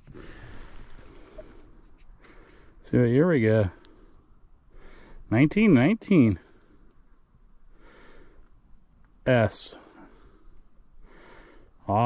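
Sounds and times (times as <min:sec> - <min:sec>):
soft breath on microphone: 0:00.0 - 0:02.8, 0:09.8 - 0:11.8.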